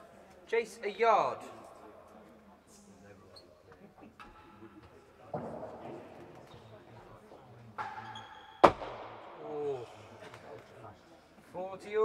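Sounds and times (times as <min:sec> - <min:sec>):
ball rebounding off walls: 0:08.6 - 0:09.3.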